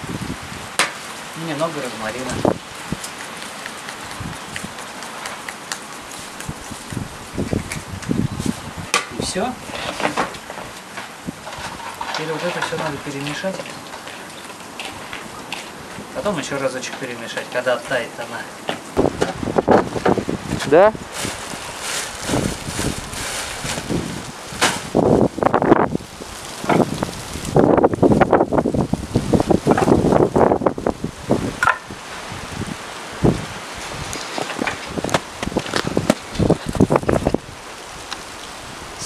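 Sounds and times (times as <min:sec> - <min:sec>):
wind buffeting microphone: 0:00.0 - 0:17.3, 0:18.8 - 0:39.0.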